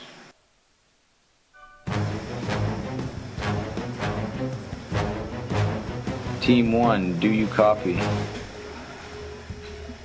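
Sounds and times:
low sustained drone: 1.6 - 10.0
steady held note: 1.6 - 10.0.

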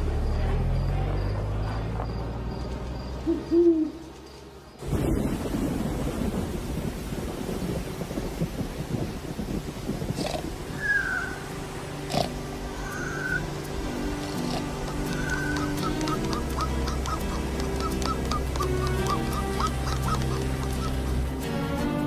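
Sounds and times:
steady low rumbling noise: 0.0 - 21.5
owl hooting: 3.2 - 4.0, 10.8 - 11.5, 12.8 - 13.6, 14.4 - 21.2.

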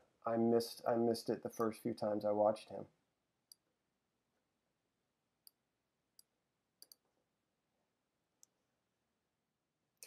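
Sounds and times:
faint computer mouse clicks: 6.2 - 7.0.

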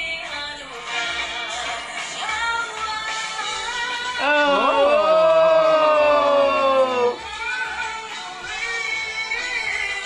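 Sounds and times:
two voices singing long note: 4.2 - 7.2.

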